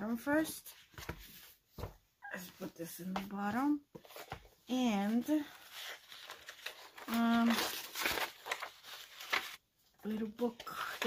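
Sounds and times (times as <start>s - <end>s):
paper pages rustling: 3.9s - 11.0s.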